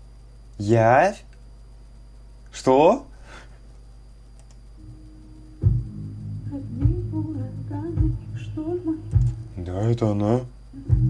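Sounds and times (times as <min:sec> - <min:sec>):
deep kick and bass beat: 0:04.8 - 0:09.8, 0:10.8 - 0:11.0
woman singing: 0:06.4 - 0:09.5, 0:10.7 - 0:11.0.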